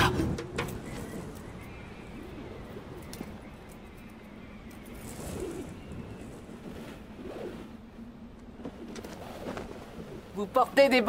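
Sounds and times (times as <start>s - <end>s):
faint breeze: 0.0s - 11.0s.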